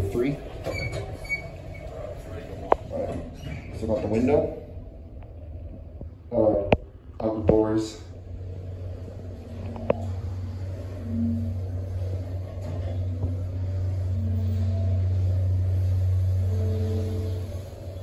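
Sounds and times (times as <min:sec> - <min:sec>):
elevator pump motor humming: 0:07.5 - 0:18.0.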